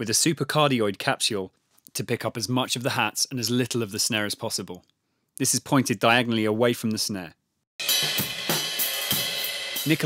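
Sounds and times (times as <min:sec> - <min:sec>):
hi-hat and cymbals wash: 0:07.8 - 0:10.0
sharp drum hits: 0:07.8 - 0:10.0.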